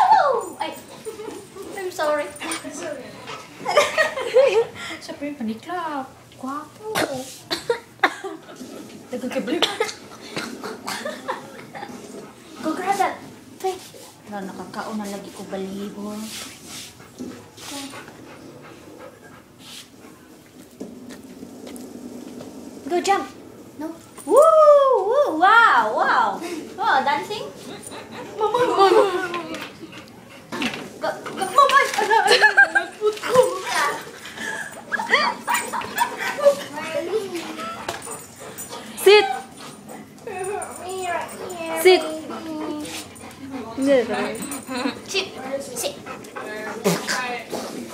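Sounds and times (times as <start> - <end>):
dog panting: 0.8 - 6.5, 11.5 - 20.6, 26.4 - 31.8, 32.8 - 47.9
dog whining: 33.2 - 45.1.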